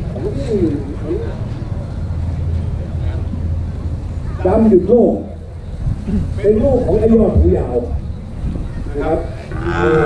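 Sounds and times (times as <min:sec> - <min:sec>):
cow mooing: 0:09.5 - 0:10.0.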